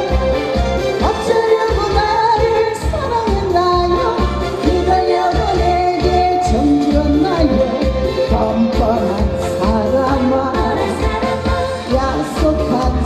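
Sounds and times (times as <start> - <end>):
backing track with steady beat: 0.0 - 13.0
woman singing into a microphone: 0.9 - 13.0.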